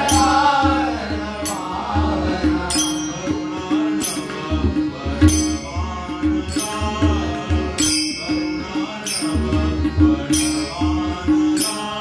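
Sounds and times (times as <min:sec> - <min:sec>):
men singing together: 0:00.0 - 0:12.0
tabla strokes: 0:00.0 - 0:12.0.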